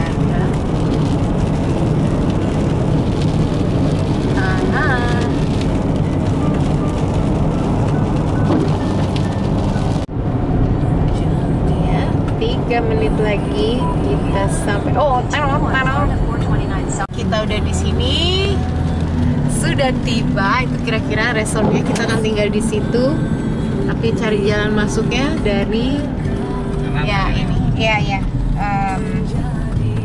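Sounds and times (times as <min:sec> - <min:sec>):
rain on windshield: 0:00.0 - 0:28.6
car engine and tyre rumble: 0:00.0 - 0:30.0.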